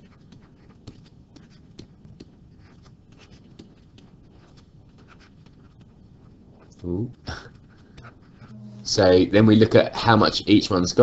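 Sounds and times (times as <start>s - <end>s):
stylus tapping and scratching: 0.0s - 8.8s.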